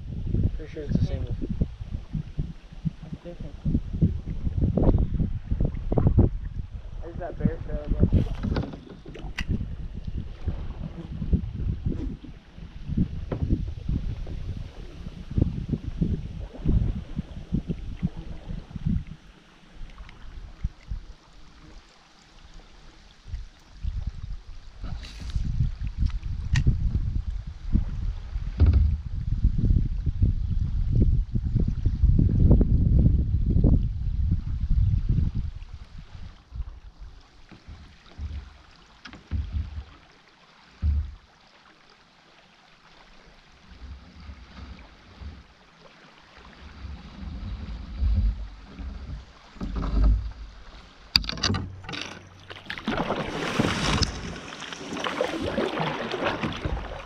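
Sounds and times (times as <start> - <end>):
wind buffeting microphone: 0.0 - 21.2, 23.2 - 40.0, 46.4 - 57.0.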